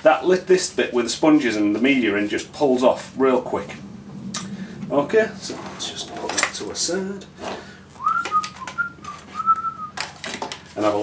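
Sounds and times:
person whistling a tune: 8.0 - 10.0.

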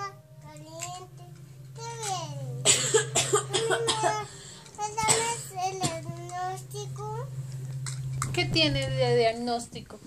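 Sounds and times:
small child's voice: 0.0 - 2.6, 3.6 - 7.3
woman coughing: 2.6 - 4.3.

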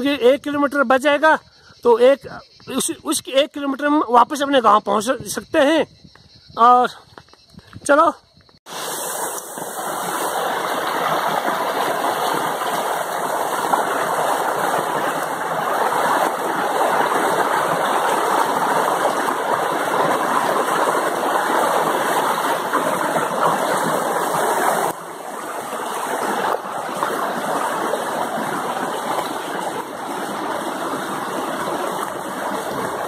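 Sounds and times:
mountain stream rushing over rocks: 8.7 - 33.0.

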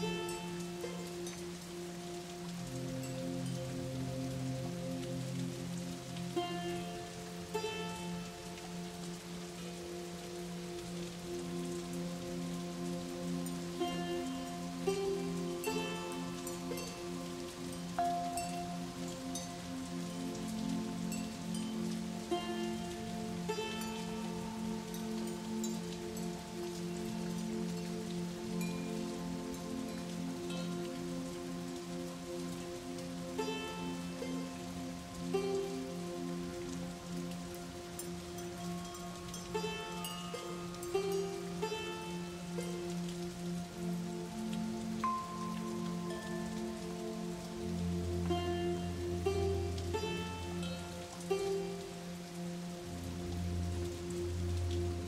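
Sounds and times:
slow ambient music: 0.0 - 55.0
steady rain: 0.0 - 55.0.

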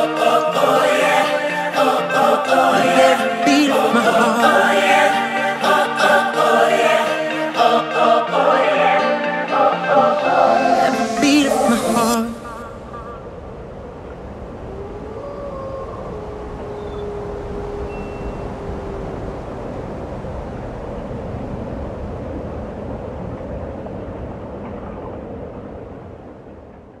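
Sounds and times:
steady rumbling noise: 0.0 - 27.0.

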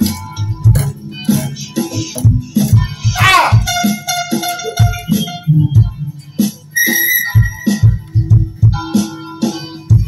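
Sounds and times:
held higher tones: 6.8 - 8.3.

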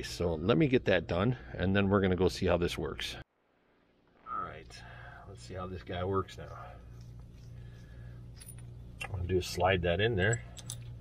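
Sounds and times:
low steady background hum: 0.0 - 11.0.

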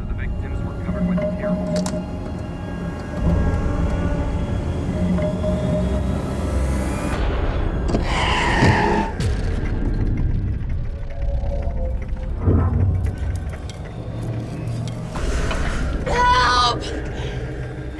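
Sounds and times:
low rumble: 7.1 - 17.9.

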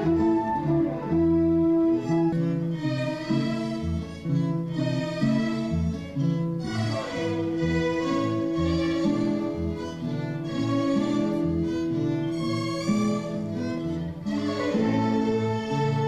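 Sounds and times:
violins and guitars playing: 0.0 - 16.0.

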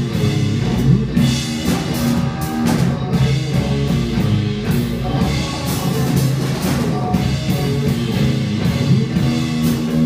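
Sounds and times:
blues band playing live: 0.0 - 10.0.

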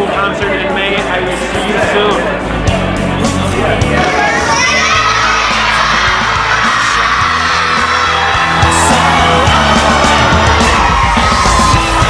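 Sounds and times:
pop-rock song with singing: 0.0 - 12.0
crowd shouting and whooping: 3.4 - 12.0.

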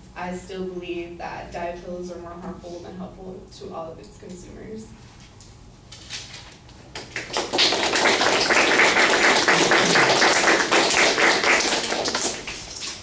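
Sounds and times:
crowd applauding: 7.0 - 13.0.

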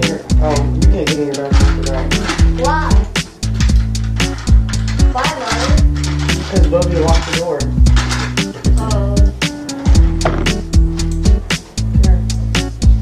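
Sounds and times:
regular drum beat: 0.0 - 13.0
song with vocal and bass: 10.0 - 11.3.

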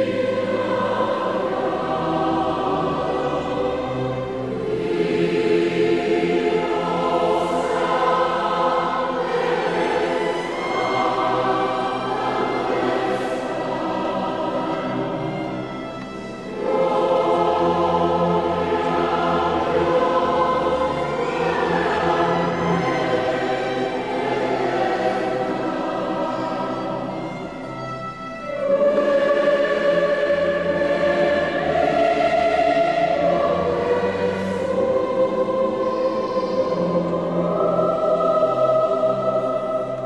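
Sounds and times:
choir singing sustained chords: 0.0 - 40.0.

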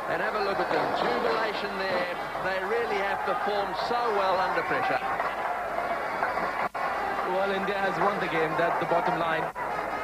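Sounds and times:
stadium crowd roaring and cheering: 0.0 - 10.0.

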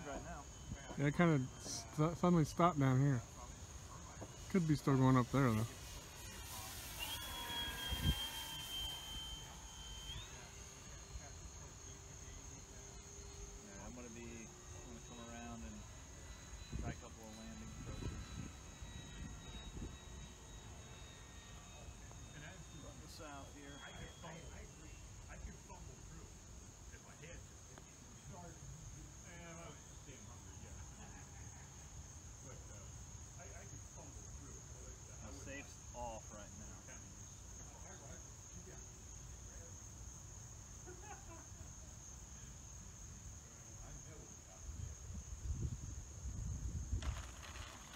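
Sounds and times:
model plane motor whine: 0.0 - 28.6, 46.3 - 47.9
crickets chirping: 0.0 - 47.9
wind rumbling on microphone: 45.1 - 47.9.

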